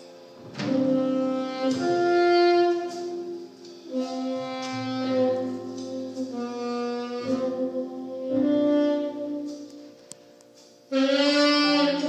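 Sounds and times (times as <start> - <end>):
keyboard chords: 0.0 - 12.0
saxophone slow melody: 0.0 - 12.0
low bass note: 0.5 - 9.6.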